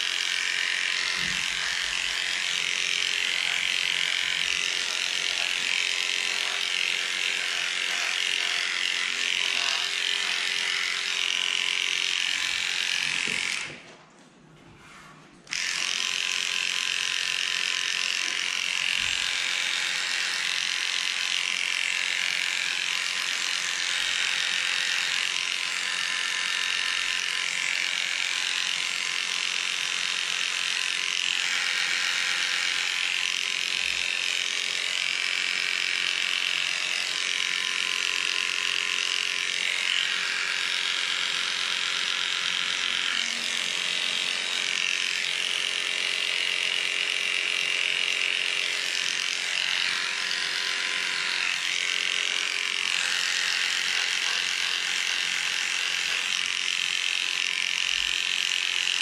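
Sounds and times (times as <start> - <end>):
electric clippers buzzing: 0.0 - 14.1, 14.8 - 59.0.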